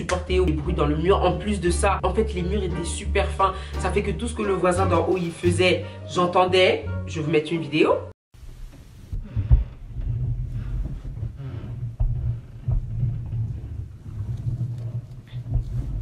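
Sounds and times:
dull thumps through ceiling: 8.4 - 16.0
muffled low rumble: 8.5 - 16.0.

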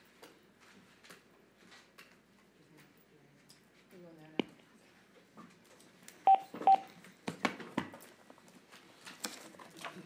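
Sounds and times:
short electronic beeps: 6.3 - 6.9.

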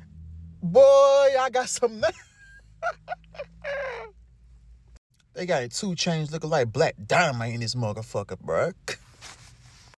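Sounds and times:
man laughing: 1.9 - 4.2.

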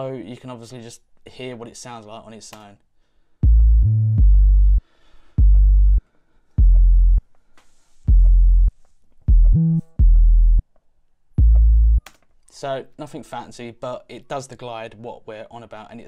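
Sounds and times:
deep bass notes: 3.4 - 6.0, 6.6 - 7.2, 8.1 - 8.7, 9.3 - 10.6, 11.4 - 12.0.

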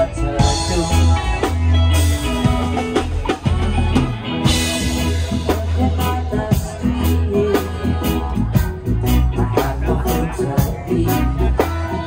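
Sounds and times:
drum kit with cymbals: 0.0 - 12.0
electric guitar: 0.0 - 12.0
low bass notes: 0.0 - 12.0.

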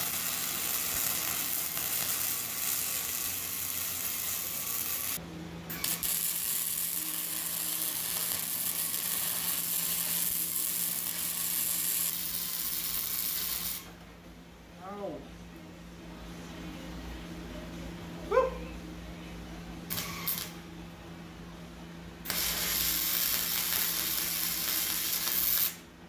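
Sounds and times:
welding arc crackling and sizzling: 0.0 - 14.0, 19.9 - 20.6, 22.2 - 25.9.

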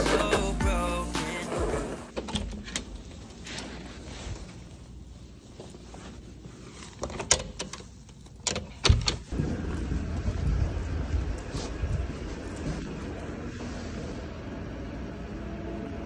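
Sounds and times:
steady low rumble: 9.3 - 15.5.

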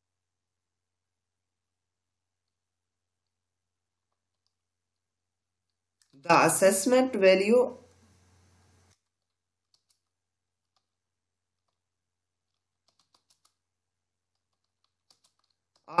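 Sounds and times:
faint keyboard keystrokes: 4.1 - 6.2, 8.9 - 13.6, 14.3 - 16.0.

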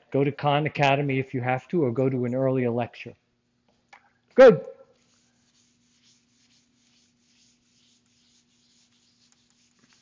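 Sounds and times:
eraser rubbing on whiteboard: 5.0 - 10.0.

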